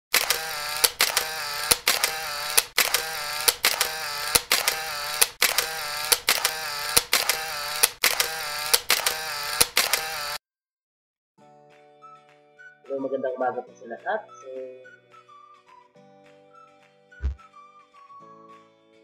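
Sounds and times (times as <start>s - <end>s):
sharp clicks: 0.1s - 10.4s.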